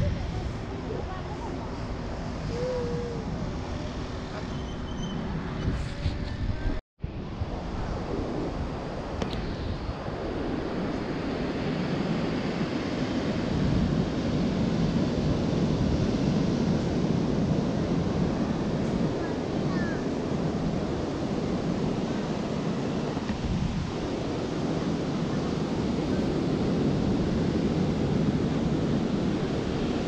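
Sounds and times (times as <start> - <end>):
seafront ambience: 0.0 - 30.0
wind buffeting microphone: 0.0 - 30.0.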